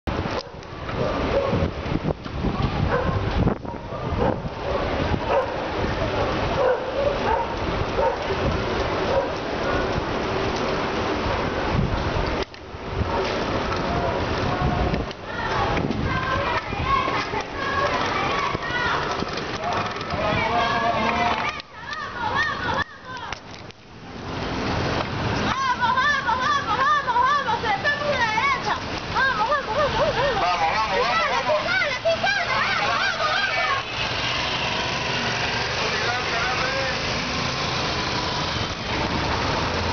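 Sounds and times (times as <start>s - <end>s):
wind buffeting microphone: 0.1s - 22.8s
tyres hissing on asphalt: 23.9s - 39.9s.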